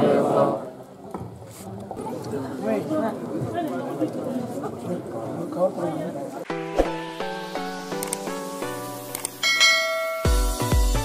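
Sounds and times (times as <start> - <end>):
electronic music with heavy bass: 6.5 - 9.4, 10.2 - 11.0.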